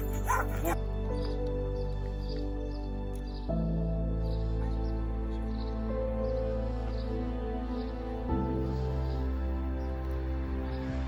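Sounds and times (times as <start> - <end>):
high dog cries: 0.0 - 0.8
background music: 0.0 - 11.0.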